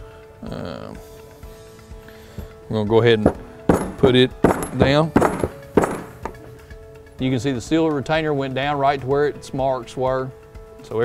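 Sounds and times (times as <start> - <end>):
hammer tapping metal: 3.2 - 6.6.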